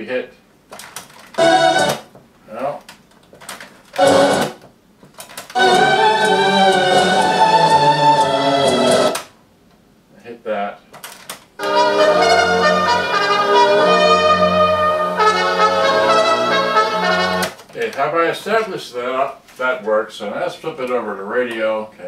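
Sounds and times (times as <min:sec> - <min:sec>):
brass-led music from speakers: 0:01.4 - 0:02.0, 0:04.0 - 0:04.6, 0:05.6 - 0:09.2, 0:11.6 - 0:17.5
person speaking: 0:02.4 - 0:02.9, 0:17.7 - 0:22.0.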